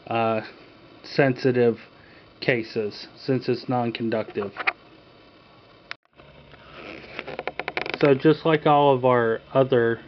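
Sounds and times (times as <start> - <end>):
person speaking: 0.1 - 4.8, 7.8 - 10.0.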